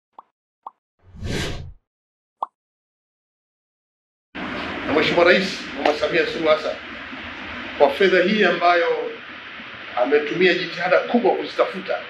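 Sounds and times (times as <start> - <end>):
whoosh: 1.1 - 1.8.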